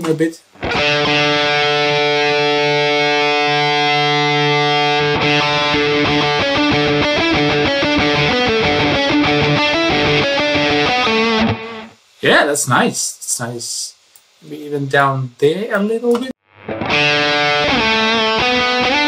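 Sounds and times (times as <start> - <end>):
distorted electric guitar: 0.5 - 12.0, 16.4 - 19.0.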